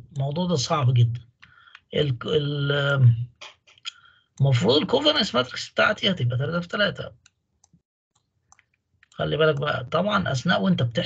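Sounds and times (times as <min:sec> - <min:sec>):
man speaking: 0:00.0 - 0:07.1, 0:09.2 - 0:11.0.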